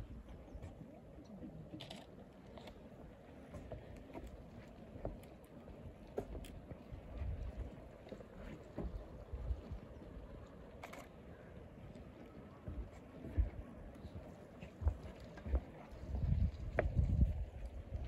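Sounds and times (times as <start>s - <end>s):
wind buffeting microphone: 6.2s - 7.8s, 14.8s - 18.0s.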